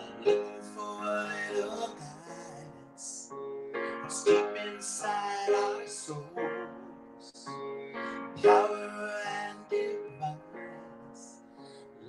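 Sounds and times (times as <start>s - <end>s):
man singing into microphone: 0.0s - 3.3s, 3.9s - 12.0s
piano chords: 0.0s - 12.0s.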